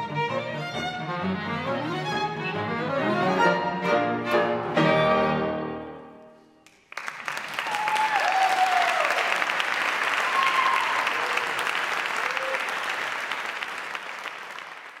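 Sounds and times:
audience applauding: 6.7 - 15.0.

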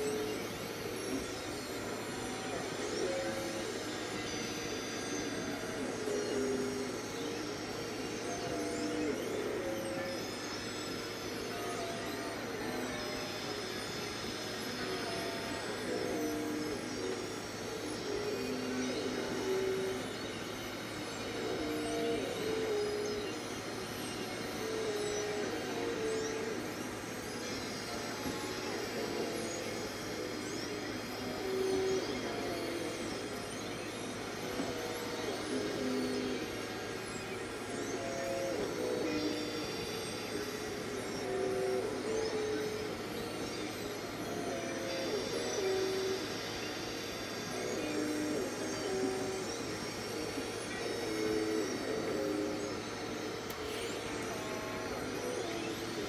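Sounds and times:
steady background hiss: 0.0 - 56.0.

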